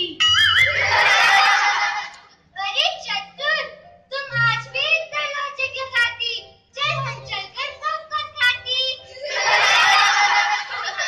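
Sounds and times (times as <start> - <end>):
children speaking: 2.6 - 10.1.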